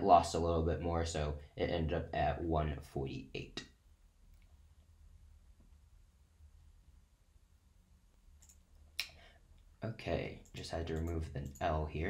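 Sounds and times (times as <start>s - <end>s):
faint low hum: 0.0s - 12.0s
computer mouse click: 8.4s - 9.1s.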